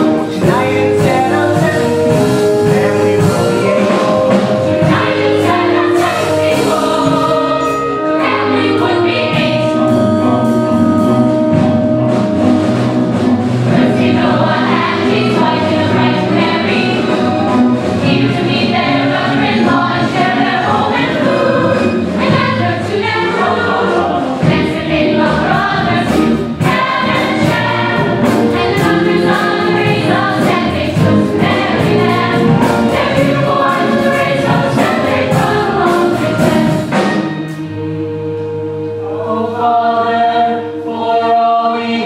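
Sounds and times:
chorus singing: 0.0s - 42.0s
instrumental accompaniment: 0.0s - 42.0s.

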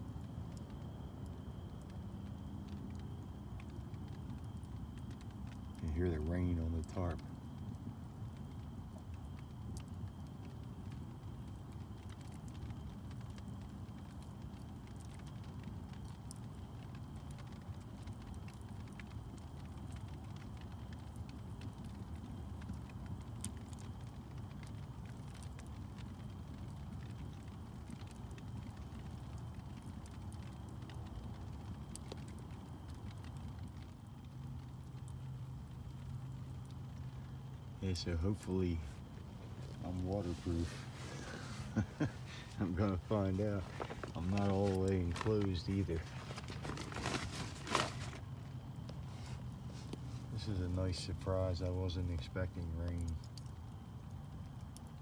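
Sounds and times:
light rain on a tarp: 0.0s - 55.0s
wood fire burning: 0.0s - 55.0s.

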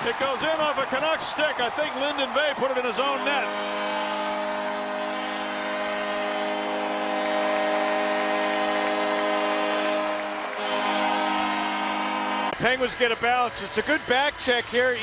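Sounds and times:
crowd cheering: 0.0s - 15.0s
arena goal horn: 3.0s - 13.2s.

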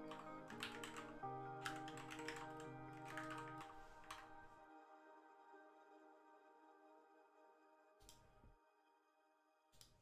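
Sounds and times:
computer keyboard typing: 0.0s - 4.4s
soft background music: 0.0s - 10.0s.

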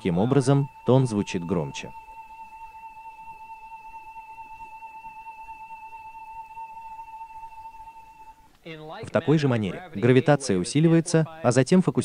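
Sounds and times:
high-pitched electronic test tone: 0.0s - 8.4s.

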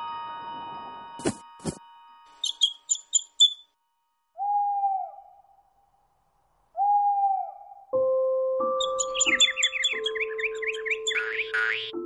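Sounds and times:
high bird chirps: 2.3s - 3.7s, 8.8s - 12.0s
owl hoots: 6.8s - 7.8s, 8.8s - 11.5s.

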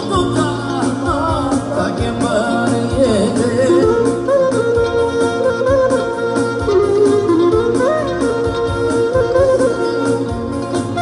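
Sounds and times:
keyboard accompaniment with beat: 0.0s - 11.0s
clarinet melody: 3.2s - 11.0s.

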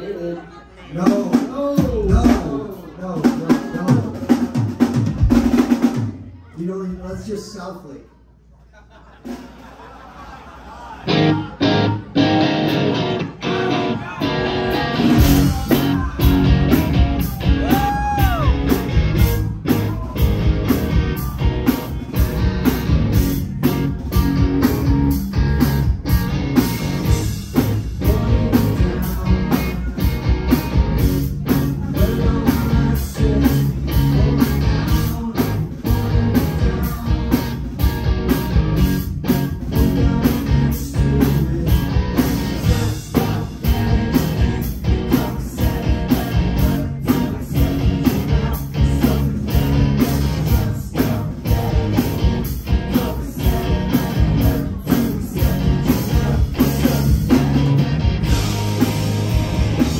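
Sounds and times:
rock band playing: 0.0s - 6.4s, 11.0s - 59.9s
electric guitar chords: 11.0s - 59.9s.

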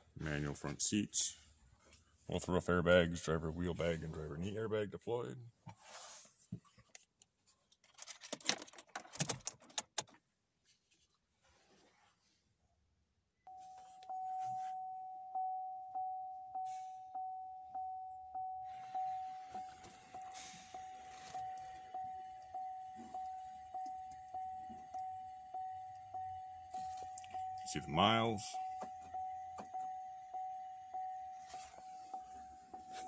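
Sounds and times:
dashboard warning chime: 13.5s - 33.0s.

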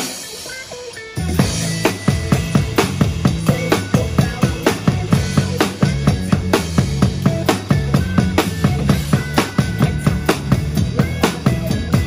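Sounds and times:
acoustic drum kit: 0.0s - 12.0s
pop backing track: 0.0s - 12.0s.

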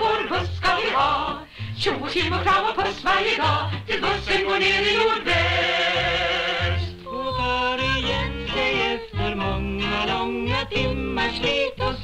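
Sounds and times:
female vocal trio singing: 0.0s - 12.0s.

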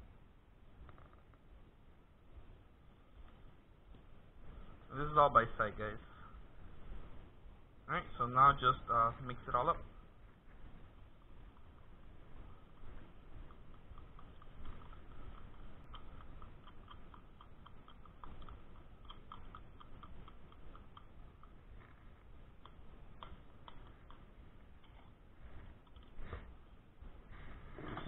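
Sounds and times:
spoon ticking against bowl: 13.4s - 21.7s.

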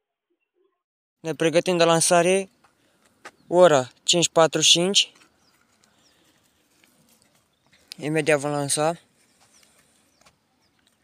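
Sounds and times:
faint high bird chirps: 9.2s - 11.0s.

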